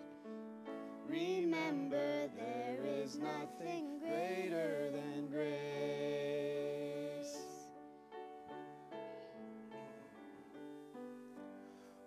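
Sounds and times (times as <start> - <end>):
soft accompaniment: 0.0 - 12.0
girl and man singing a duet: 1.0 - 7.7.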